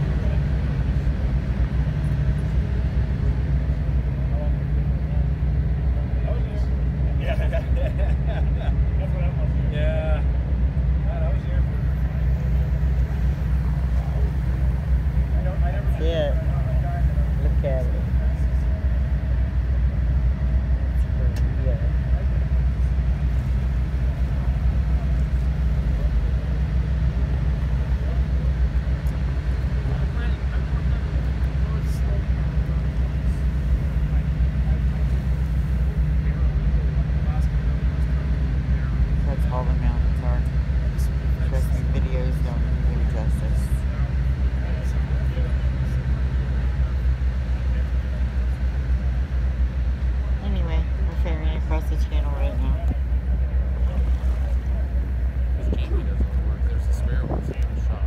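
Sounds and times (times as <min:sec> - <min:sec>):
boat engine humming: 0:00.0 - 0:58.0.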